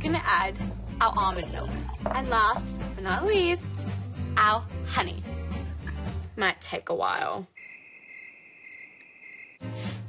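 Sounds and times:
cartoon cricket chirping: 7.6s - 9.6s.

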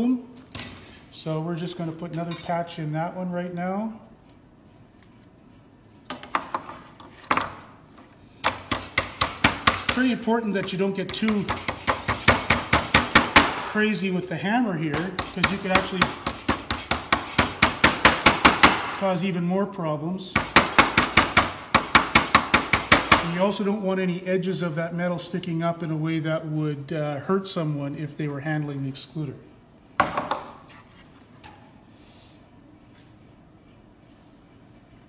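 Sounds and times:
small hammer tapping sheet metal: 8.4s - 13.8s, 14.9s - 19.0s.

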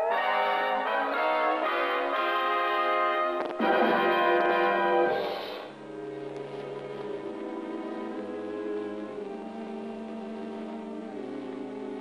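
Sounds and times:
cartoon background music chords: 0.0s - 6.2s.

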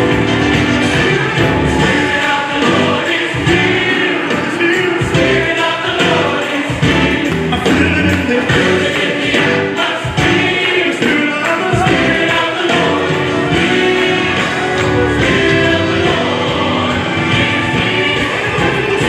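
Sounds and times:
choir singing gospel song: 0.0s - 19.0s
instrumental accompaniment: 0.0s - 19.0s.

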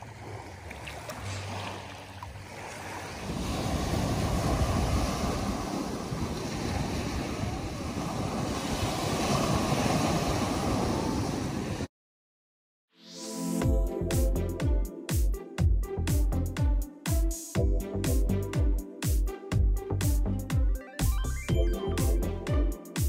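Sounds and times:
water washing over sand: 0.0s - 11.9s
waves breaking on beach: 0.0s - 11.9s
wind buffeting microphone: 3.2s - 11.9s.

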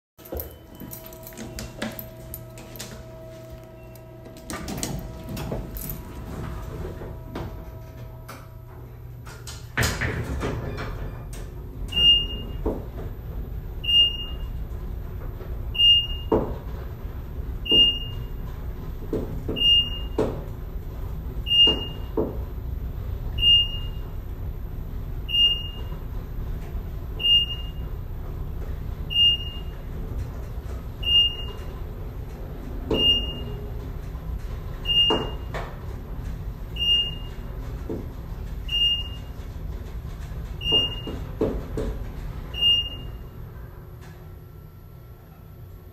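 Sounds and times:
elevator hum: 0.2s - 45.9s
low running rumble: 20.4s - 45.9s
elevator jolt: 24.9s - 43.6s.

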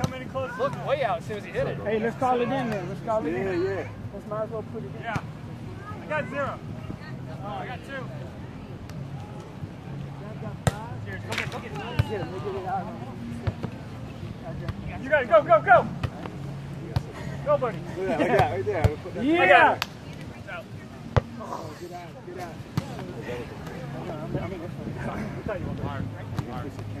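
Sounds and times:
faint voices: 0.0s - 27.0s
hand slapping volleyball: 19.8s - 20.2s.

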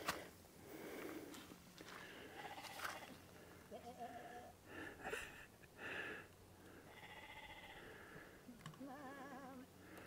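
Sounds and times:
faint sheep bleats: 2.3s - 4.6s, 6.9s - 7.9s, 8.7s - 9.7s.

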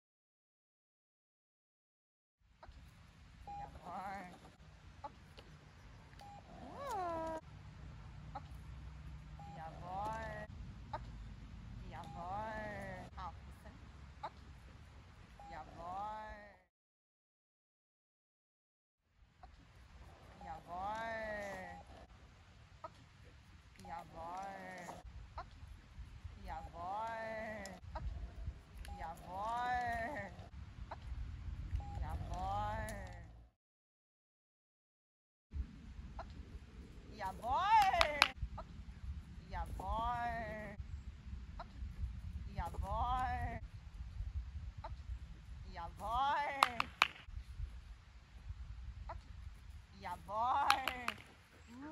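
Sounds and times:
dog whining: 6.2s - 7.4s.

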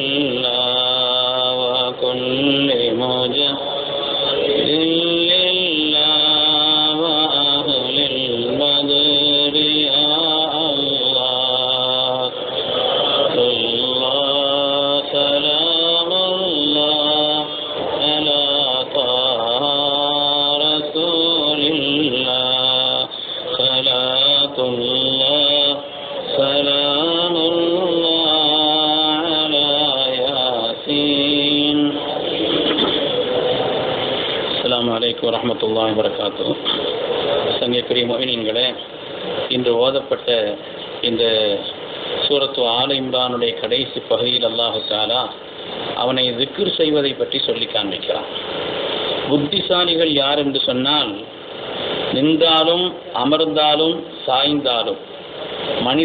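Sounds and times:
man chanting melodically: 0.0s - 56.0s.

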